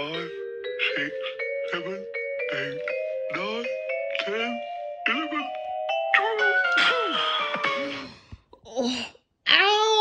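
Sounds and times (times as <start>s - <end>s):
held musical notes: 0.0s - 7.9s.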